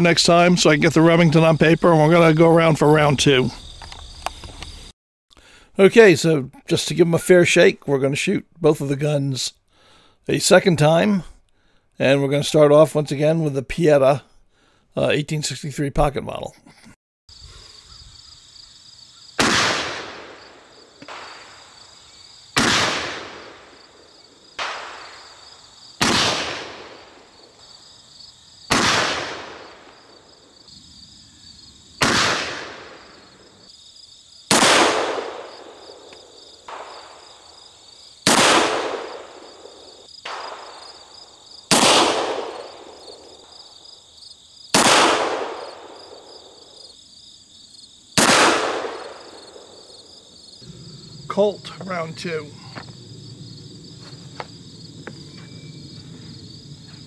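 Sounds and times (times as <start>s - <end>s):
crickets chirping: 0.0s - 5.0s, 17.3s - 57.0s
revolver gunshots: 19.4s - 21.7s, 22.6s - 23.8s, 24.6s - 25.4s, 26.0s - 27.3s, 28.7s - 30.0s, 32.0s - 33.1s, 34.5s - 36.1s, 36.7s - 37.4s, 38.2s - 41.1s, 41.7s - 43.3s, 44.7s - 46.3s, 48.2s - 49.8s.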